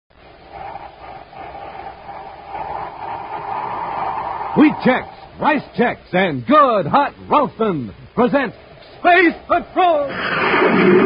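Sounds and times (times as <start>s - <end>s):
rushing noise effect: 0.1s - 6.2s, 8.6s - 11.0s.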